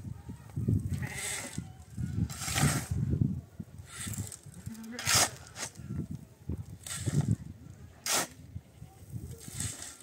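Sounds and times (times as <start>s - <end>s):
shovel scraping into gravel: 5.0s - 5.7s, 8.0s - 8.4s, 9.4s - 10.0s.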